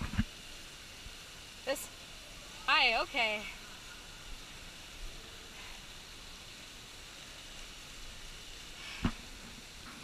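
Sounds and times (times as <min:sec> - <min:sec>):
water streams falling into pool: 0:00.0 - 0:10.0.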